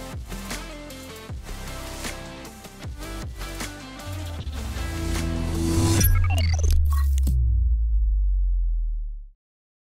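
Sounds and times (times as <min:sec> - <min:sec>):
deep electronic bass tone: 0:04.1 - 0:09.3.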